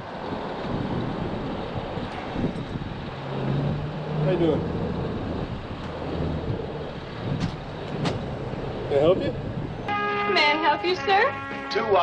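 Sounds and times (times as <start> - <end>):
low engine hum: 0.0 - 11.8
road traffic passing: 0.0 - 12.0.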